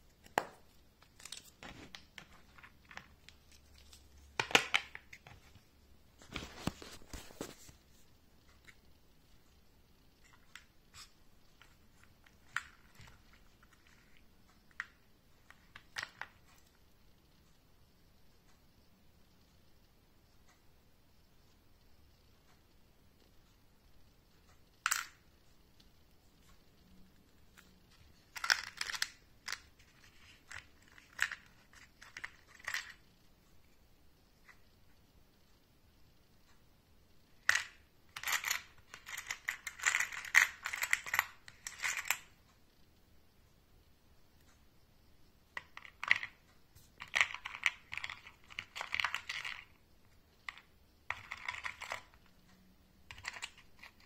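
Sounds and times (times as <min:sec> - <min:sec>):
small metal parts clicking: 0:27.6 - 0:33.1, 0:37.4 - 0:42.4, 0:47.0 - 0:49.8, 0:53.0 - 0:54.0.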